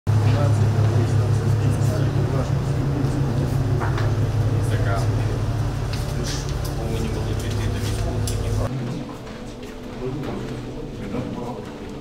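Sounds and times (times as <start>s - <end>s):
loud low mechanical hum: 0.1s - 9.1s
people talking quietly: 0.1s - 12.0s.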